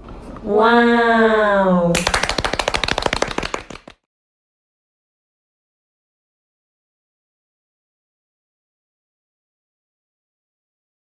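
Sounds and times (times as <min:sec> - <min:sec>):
applause: 0:02.0 - 0:04.1.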